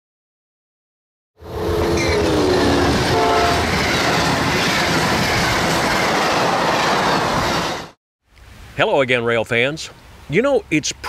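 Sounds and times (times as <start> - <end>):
train horn: 1.4 - 3.7
train rolling on rails: 1.4 - 8.0.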